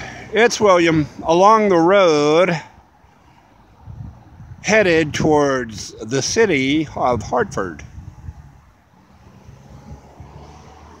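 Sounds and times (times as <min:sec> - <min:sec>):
wind buffeting microphone: 0:00.0 - 0:01.8, 0:03.5 - 0:11.0
faint passing traffic: 0:00.0 - 0:11.0.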